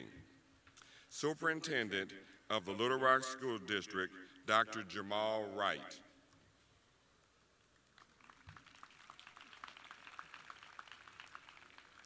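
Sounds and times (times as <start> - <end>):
faint audience applause: 7.9 - 12.0.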